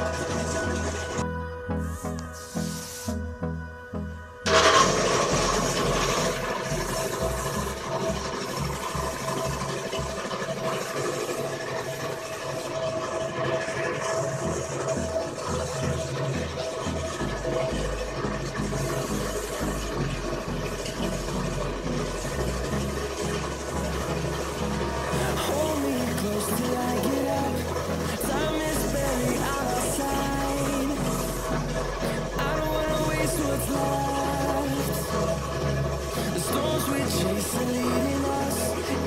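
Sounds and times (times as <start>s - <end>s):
paint spray gun hissing: 2.0s - 3.2s.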